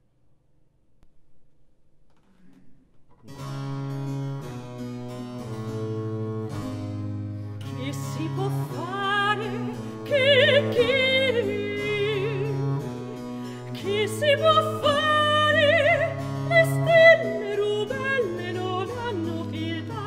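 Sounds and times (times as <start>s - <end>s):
bowed bass notes: 2.4s - 20.0s
woman singing with vibrato: 7.8s - 12.8s, 13.6s - 20.0s.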